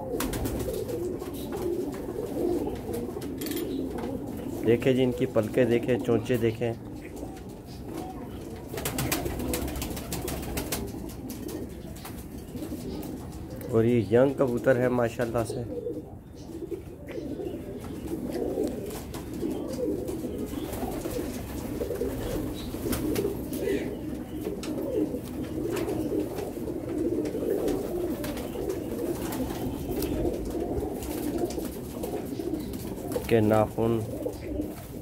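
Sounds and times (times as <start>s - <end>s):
pigeons cooing: 0.0s - 35.0s.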